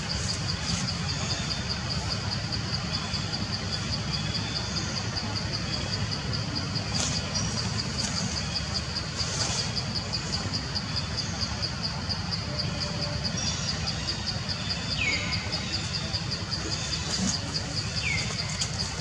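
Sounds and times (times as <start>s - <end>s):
insect chirping: 0.0s - 19.0s
low outdoor rumble: 0.0s - 19.0s.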